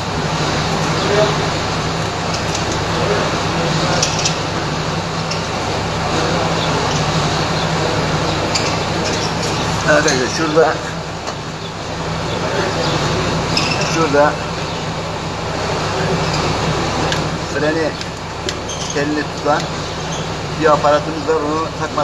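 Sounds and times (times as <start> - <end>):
faint voices: 0.0 - 22.0
traffic noise: 0.0 - 22.0.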